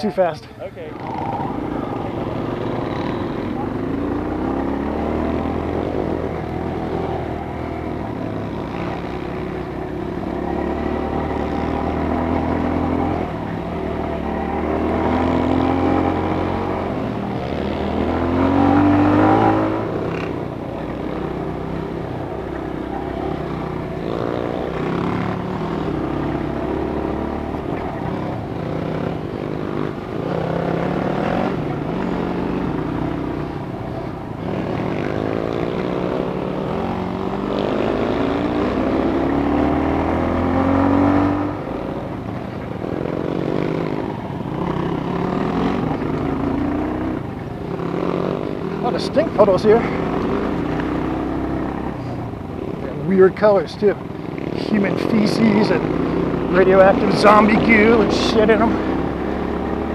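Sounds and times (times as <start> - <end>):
dirt bike engine revving: 0.8 - 59.9.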